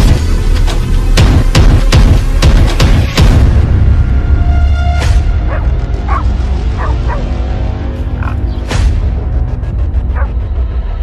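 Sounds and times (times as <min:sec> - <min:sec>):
music with heavy bass: 0:00.0 - 0:11.0
dogs yelping: 0:05.5 - 0:07.4, 0:10.2 - 0:10.4.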